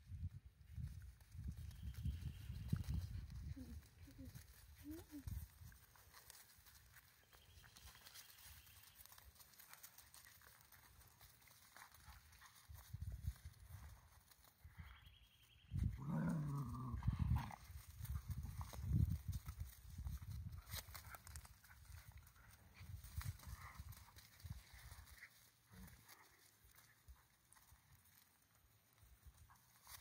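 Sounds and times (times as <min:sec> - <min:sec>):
paws scuffling on gravel: 0:01.4 - 0:14.8, 0:16.0 - 0:30.0
dog growling: 0:16.0 - 0:17.1.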